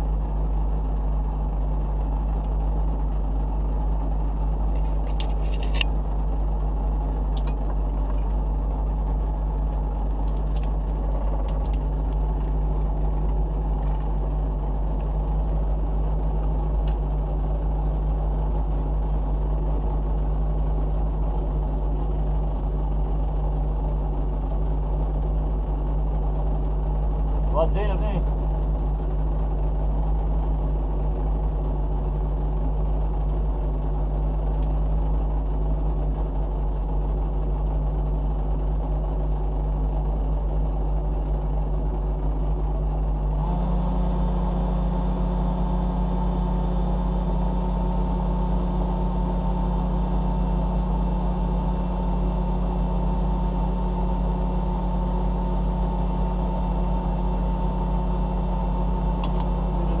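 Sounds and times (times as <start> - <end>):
car engine idling: 0.0 - 60.0
steady higher whine: 0.0 - 60.0.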